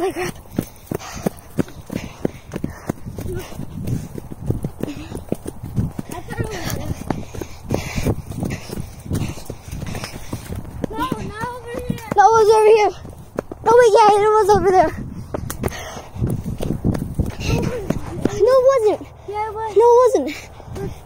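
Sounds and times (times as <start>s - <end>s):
running footsteps on dry leaves: 0.0s - 19.6s
person speaking: 10.8s - 13.0s.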